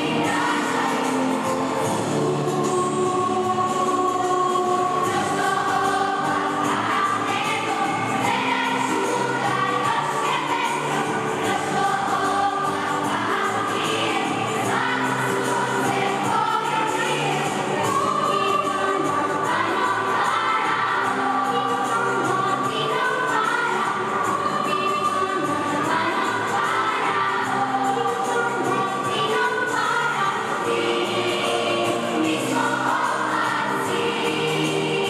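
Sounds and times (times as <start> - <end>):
children's choir singing: 0.0 - 35.0.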